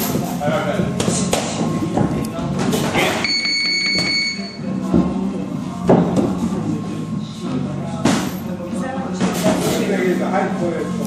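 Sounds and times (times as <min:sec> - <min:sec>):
electronic timer buzzer tone: 0:03.2 - 0:04.6.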